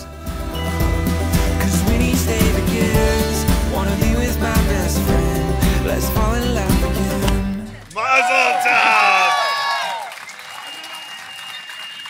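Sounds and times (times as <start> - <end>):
crowd applauding: 7.5 - 12.0.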